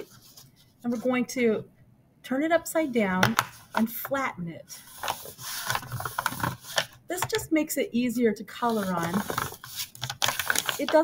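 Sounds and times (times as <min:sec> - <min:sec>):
paper plate crackling: 0:08.6 - 0:11.0.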